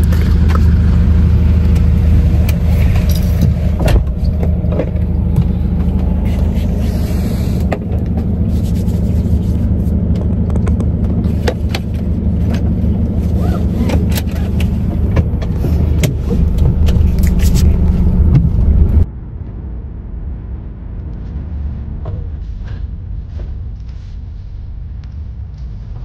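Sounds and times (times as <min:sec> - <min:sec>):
vehicle cabin rumble: 0:00.0 - 0:26.0.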